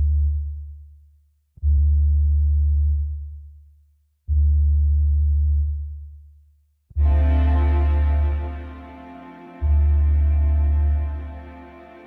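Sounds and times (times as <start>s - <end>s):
deep sustained bass note: 7.0s - 12.0s.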